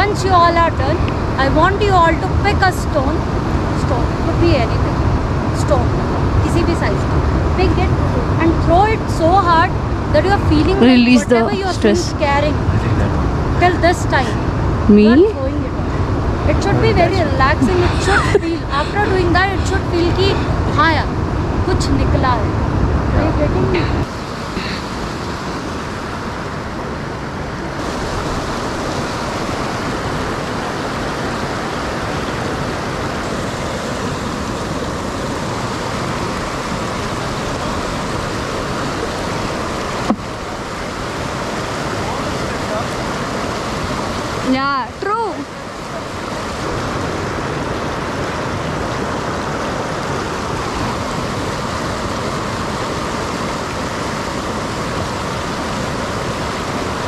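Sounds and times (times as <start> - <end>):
stream rushing over boulders: 0.0 - 57.0
wavering pitched sound: 10.2 - 20.9.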